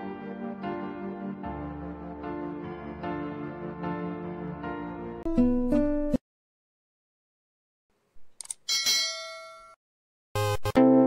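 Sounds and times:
bell-like ding: 8.7s - 9.8s.

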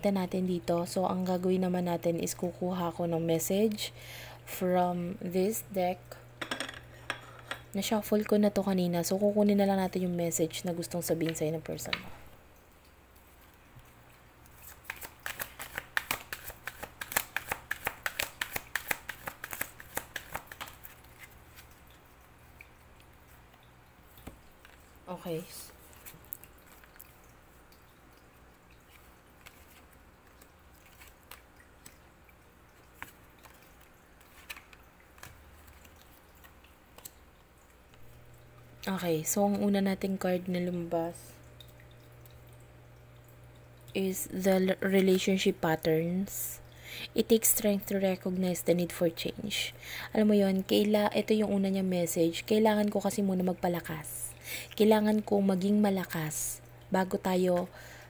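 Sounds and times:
low steady hum: 0.0s - 58.0s
water trickling and dripping: 7.2s - 17.2s, 19.6s - 49.2s, 50.1s - 58.0s
cards being shuffled: 14.5s - 21.8s, 28.9s - 31.5s, 32.9s - 37.1s.

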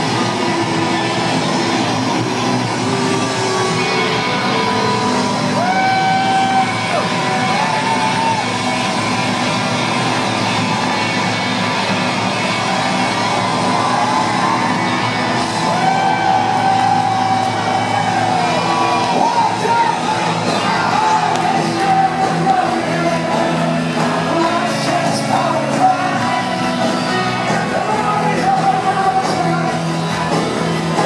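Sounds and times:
live rock band with horns: 0.0s - 31.0s.

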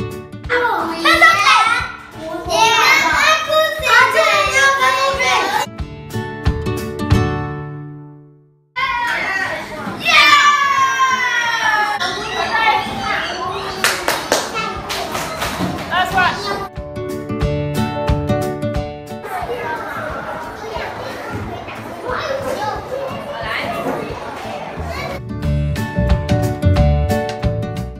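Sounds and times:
children talking and calling out: 0.4s - 5.7s, 8.8s - 16.8s, 19.1s - 25.2s
schoolchildren chattering: 0.7s - 5.7s, 8.8s - 16.7s, 19.2s - 25.2s.

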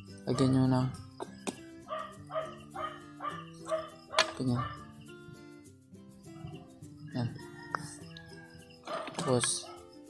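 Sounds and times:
background music: 0.0s - 10.0s
dog barking: 0.3s - 0.6s, 1.9s - 4.9s, 8.8s - 9.9s.

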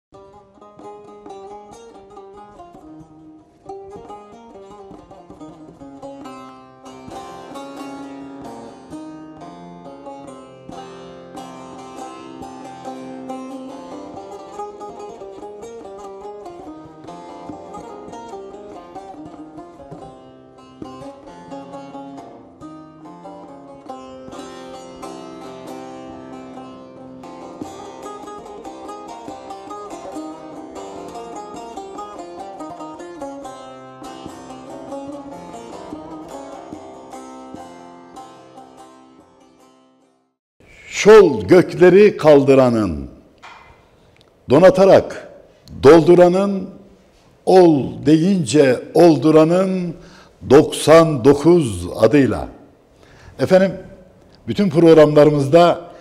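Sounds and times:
plucked lute folk music: 0.1s - 40.4s, 43.4s - 44.7s.

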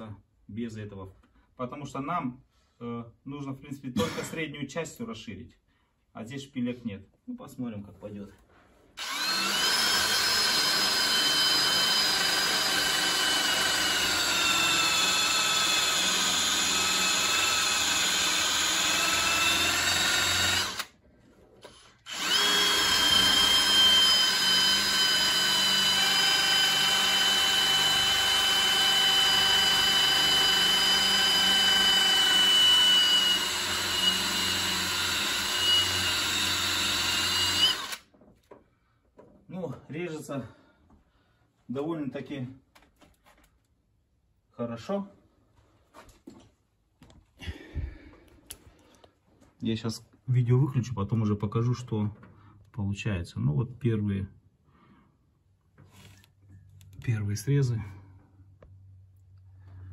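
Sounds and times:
cordless drill grinding metal: 9.0s - 21.0s, 21.6s - 38.1s.

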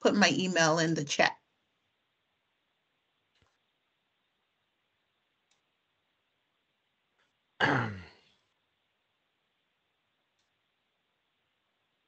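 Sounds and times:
person clearing throat: 7.6s - 8.2s.

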